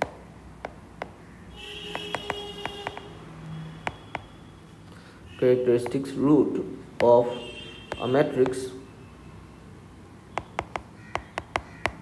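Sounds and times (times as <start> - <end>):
stylus tapping on glass screen: 0.0 - 1.2, 1.9 - 3.1, 3.8 - 4.3, 5.8 - 6.0, 7.9 - 8.7, 10.3 - 12.0.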